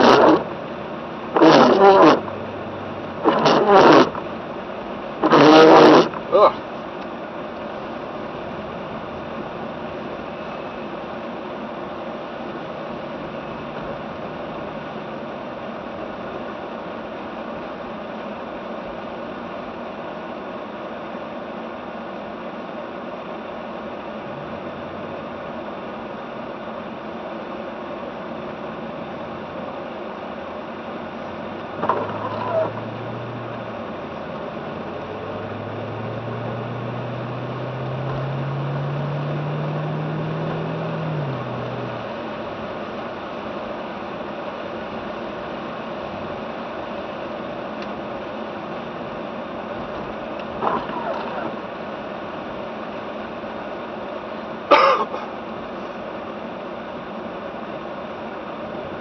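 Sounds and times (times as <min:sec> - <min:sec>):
car engine and tyre noise: 0:00.0 - 0:59.0.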